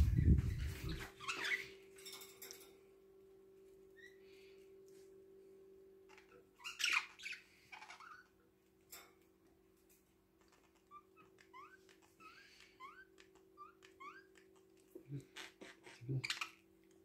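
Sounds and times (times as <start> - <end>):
budgerigars chirping: 6.1 - 8.3, 15.3 - 16.6.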